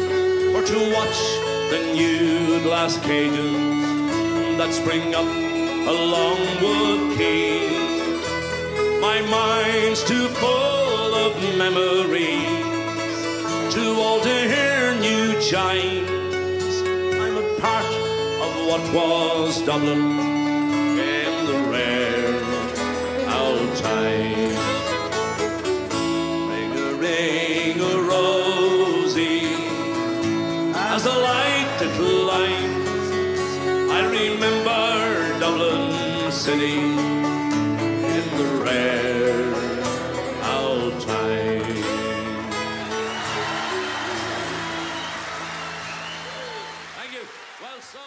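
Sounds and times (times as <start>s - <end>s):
banjo: 0.0s - 46.6s
fiddle holding wavering notes: 0.0s - 47.0s
acoustic guitar strumming: 0.0s - 47.5s
folk band playing: 0.0s - 47.5s.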